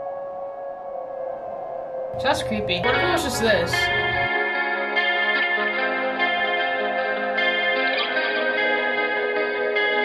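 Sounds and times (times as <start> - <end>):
sustained synthesizer pad note: 0.0 - 9.8.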